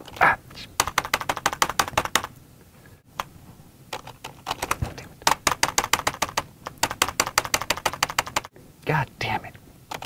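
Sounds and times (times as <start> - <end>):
keyboard key taps: 0.8 - 2.3, 4.5 - 8.5.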